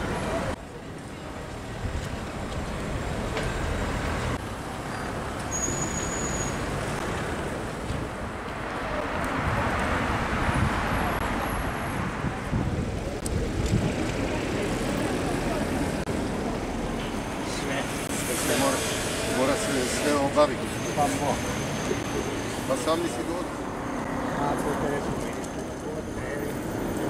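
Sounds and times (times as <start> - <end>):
street traffic noise: 0.0 - 27.0.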